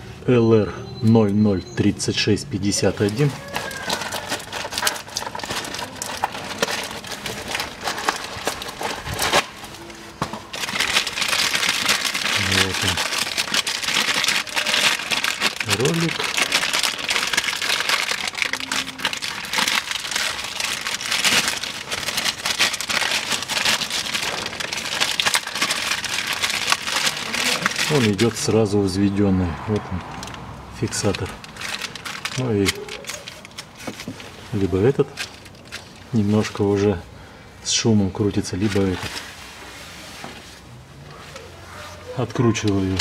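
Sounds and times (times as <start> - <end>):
plastic bag crinkling: 2.6 - 29.0, 29.7 - 37.0, 38.1 - 39.9, 41.6 - 43.0.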